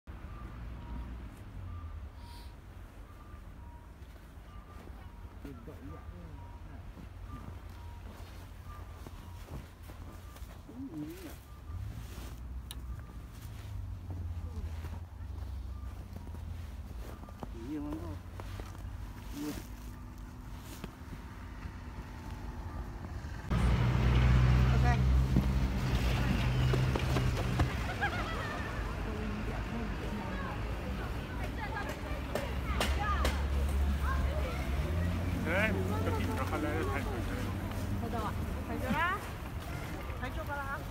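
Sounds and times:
vehicle reversing beeper: 0:00.1 - 0:31.3
boots treading through snow: 0:07.3 - 0:23.1
people chattering: 0:25.8 - 0:40.9.

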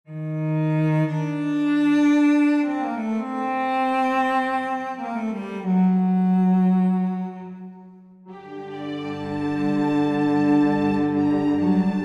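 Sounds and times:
low bowed strings: 0:00.1 - 0:12.0.

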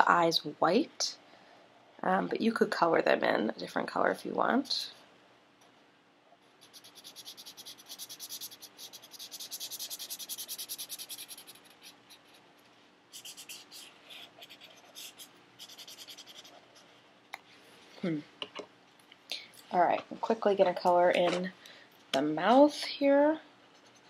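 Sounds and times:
marker scribbling on paper: 0:06.6 - 0:12.4, 0:13.1 - 0:16.6.

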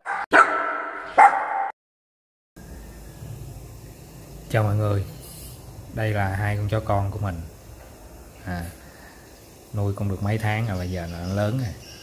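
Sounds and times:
dog barking: 0:00.0 - 0:01.7.

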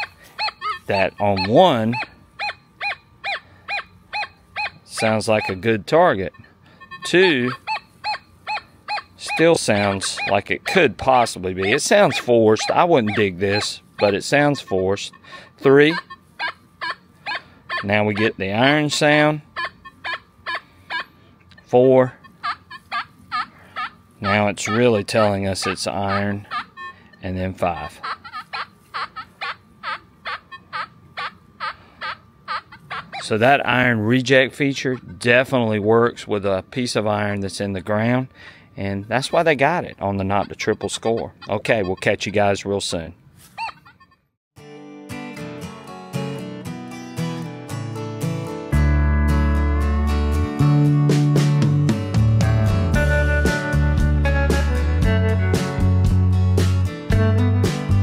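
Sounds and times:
metal detector target beeps: 0:00.0 - 0:05.7, 0:06.3 - 0:10.5, 0:11.2 - 0:16.1.

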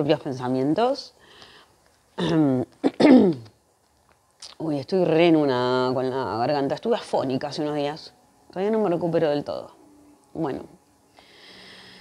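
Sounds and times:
woman clearing hoarse throat: 0:02.2 - 0:03.5.

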